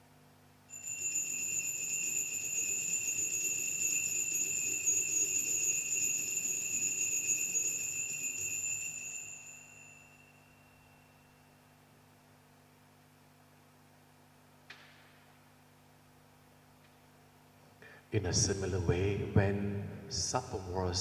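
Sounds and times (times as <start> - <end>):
altar bells ringing: 0.7 - 11.8.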